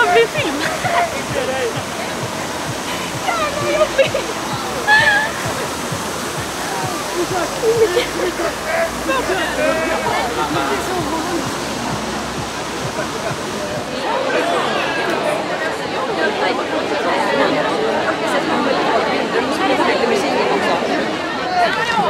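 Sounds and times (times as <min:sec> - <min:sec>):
fountain jet spraying into river: 0:00.0 - 0:14.5
voices talking: 0:00.0 - 0:22.0.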